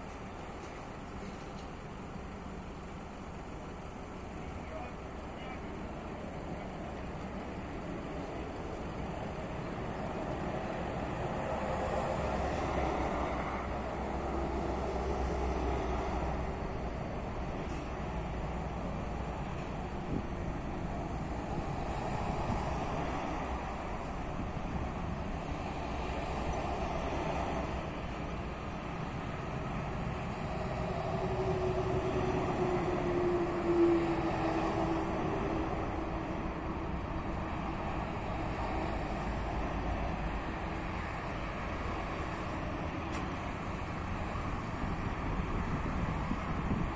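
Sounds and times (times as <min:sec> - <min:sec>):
low engine hum: 0:00.0 - 0:46.9
motorway traffic passing: 0:00.0 - 0:46.9.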